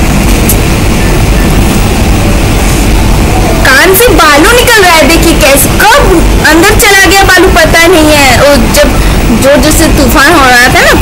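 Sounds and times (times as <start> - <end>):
heavy rain: 0.0 - 11.0
strong wind buffeting microphone: 0.0 - 11.0.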